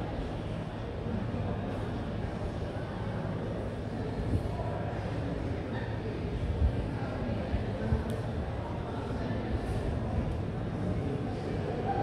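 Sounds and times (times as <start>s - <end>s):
indistinct chatter of people: 0.0s - 12.0s
low room noise rumble: 0.0s - 12.0s.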